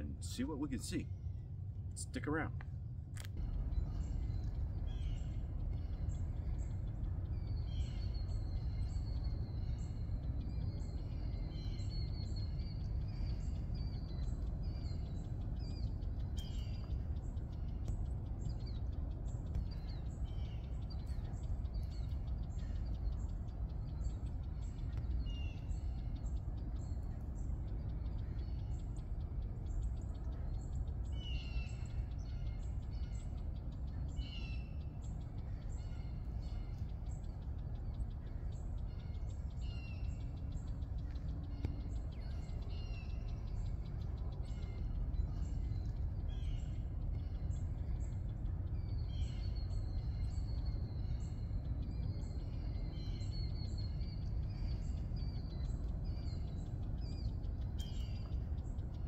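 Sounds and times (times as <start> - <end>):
small birds chirping: 0.0 - 59.0
steady low rumble: 0.0 - 59.0.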